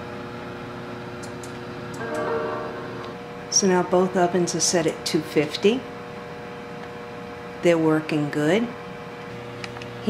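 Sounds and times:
appliance fan humming: 0.0 - 2.1, 3.2 - 10.0
faint even tones: 2.0 - 3.6.

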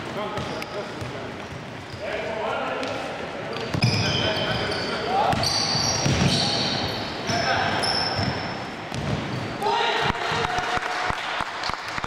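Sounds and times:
sneakers squeaking on court: 0.0 - 9.6
basketball bouncing: 5.2 - 6.4, 8.2 - 9.4.

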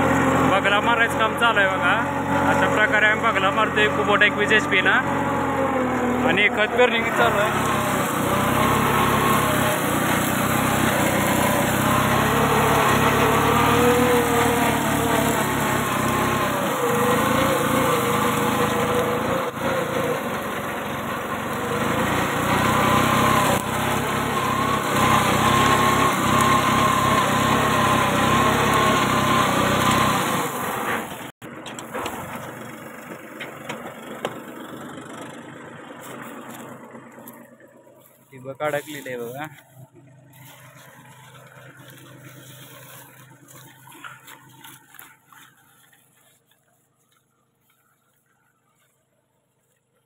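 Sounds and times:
tractor diesel engine running: 0.0 - 50.0.

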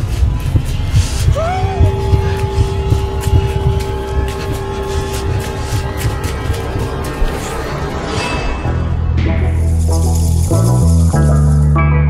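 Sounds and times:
quick footfalls: 0.0 - 7.7
steady held tone: 0.0 - 11.8.

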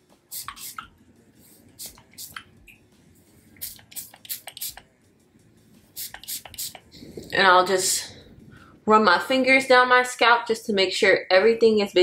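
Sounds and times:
spray bottle hissing sprays: 0.3 - 2.5, 3.4 - 4.8, 5.9 - 6.9.

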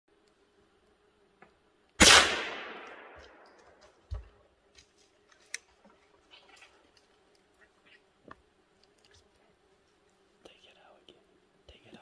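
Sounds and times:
rifle shot echoing: 2.0 - 3.4
faint ticks and rustles: 3.3 - 12.0.

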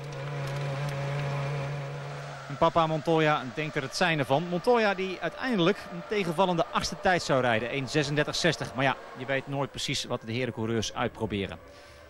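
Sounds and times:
racing car engine running: 0.0 - 10.9
gravel rushing against car: 0.0 - 11.5.

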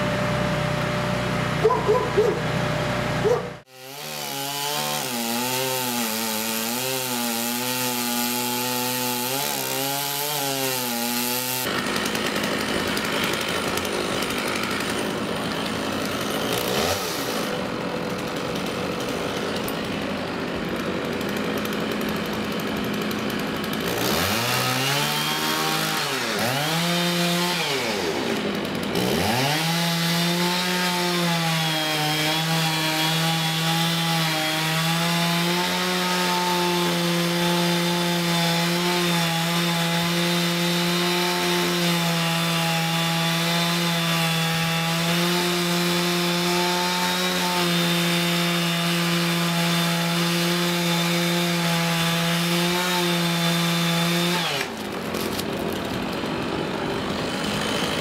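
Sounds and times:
chainsaw revving and cutting wood: 0.0 - 58.0.

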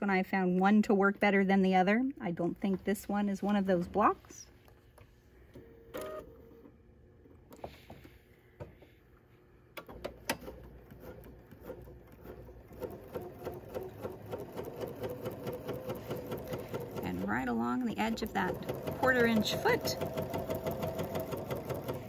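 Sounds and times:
sewing machine stitching: 10.3 - 22.0.

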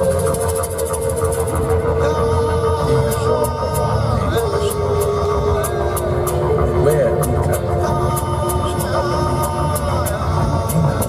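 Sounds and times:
low pulsing drone: 0.0 - 11.0
quick ticking rhythm: 0.0 - 11.0.

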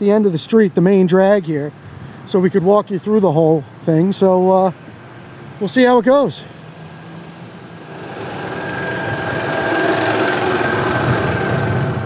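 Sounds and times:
motor vehicle passing with whine: 6.6 - 12.0.

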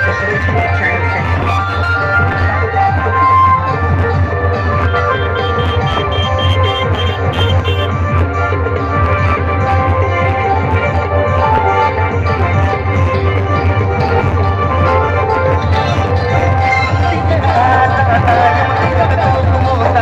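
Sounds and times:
heavy steady bass: 0.0 - 8.5
keyboard-like melody: 0.0 - 20.0
loud music from loudspeakers: 0.0 - 20.0.

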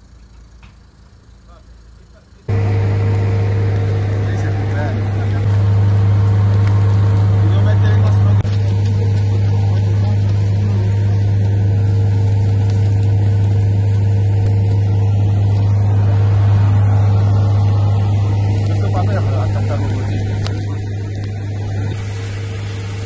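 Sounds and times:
diesel engine low hum: 0.0 - 23.0.

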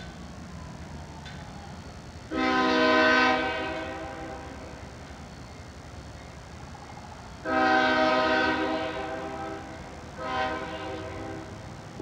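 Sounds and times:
locomotive air horn blasts: 2.3 - 4.6, 7.4 - 11.6.

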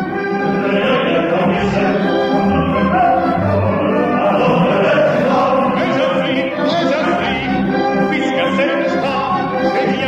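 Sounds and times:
chorus singing opera: 0.0 - 10.0
orchestra playing: 0.0 - 10.0.

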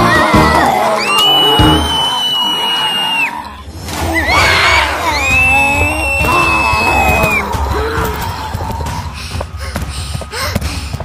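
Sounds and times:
background music: 0.0 - 2.3
long high-pitched screams: 0.9 - 3.6.

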